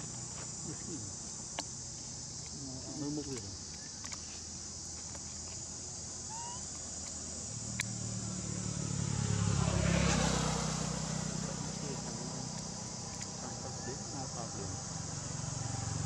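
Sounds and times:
insects droning: 0.0s - 16.0s
motor vehicle passing: 7.5s - 16.0s.

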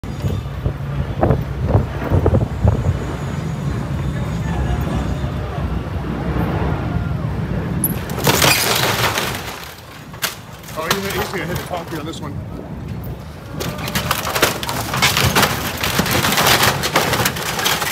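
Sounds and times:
boat engines rumbling: 0.0s - 17.9s.

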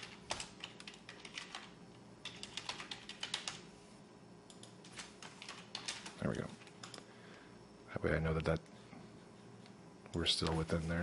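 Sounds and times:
computer keyboard typing: 0.0s - 3.6s, 4.5s - 7.0s.

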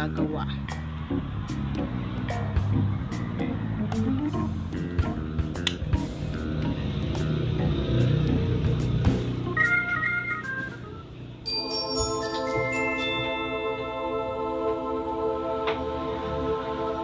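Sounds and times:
background music sustained notes: 0.0s - 17.0s
bell-like notes: 11.4s - 14.9s.

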